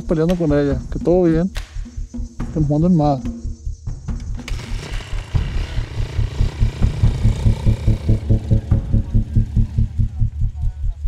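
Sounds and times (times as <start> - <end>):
low rhythmic throbbing: 0.0 - 11.0.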